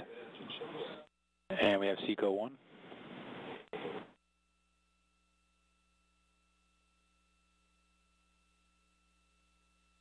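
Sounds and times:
radio hiss: 0:00.0 - 0:04.2.

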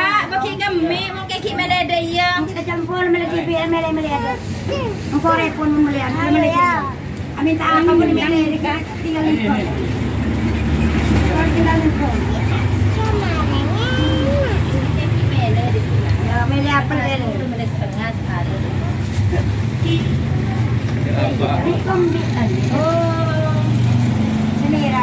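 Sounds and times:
indistinct voices talking: 0:00.0 - 0:25.0
vehicle engine rumble: 0:03.7 - 0:25.0.

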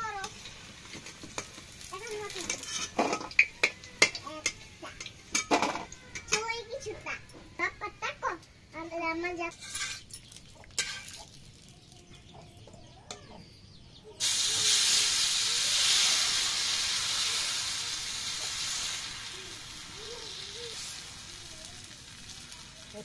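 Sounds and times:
batter sizzling in hot pan: 0:00.0 - 0:12.2, 0:14.2 - 0:23.0.

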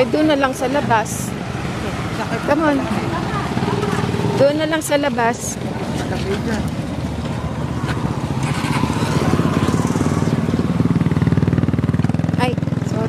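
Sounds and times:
motorcycle engine puttering: 0:02.2 - 0:13.0.

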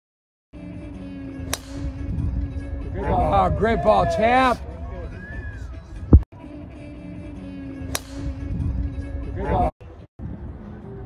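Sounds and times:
golf driver striking ball: 0:01.5 - 0:02.0.

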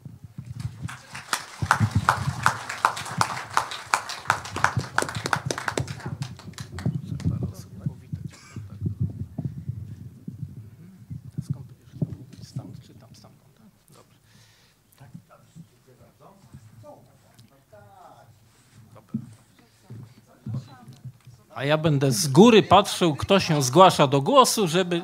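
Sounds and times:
audience applauding: 0:00.5 - 0:07.6
murmur of voices: 0:18.4 - 0:25.0.

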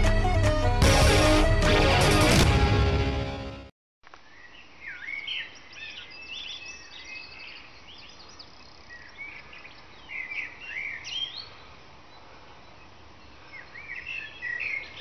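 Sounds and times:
music: 0:00.0 - 0:03.7
birds chirping: 0:04.3 - 0:15.0.

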